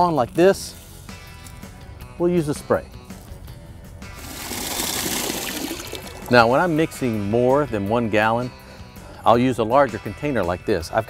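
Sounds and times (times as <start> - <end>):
background music: 0.0 - 11.0
hose water running into bucket: 4.1 - 6.8.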